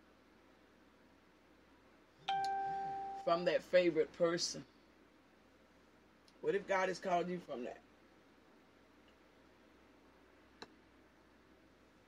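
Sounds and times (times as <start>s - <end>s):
clear ringing chime: 2.3s - 3.3s.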